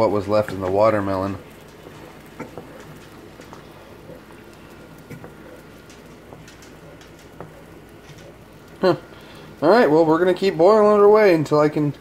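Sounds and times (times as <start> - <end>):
syrup bubbling in a pan: 0.0 - 12.0.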